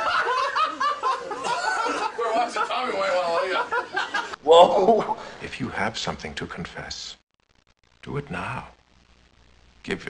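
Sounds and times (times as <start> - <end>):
group of people laughing: 0.0 - 5.3.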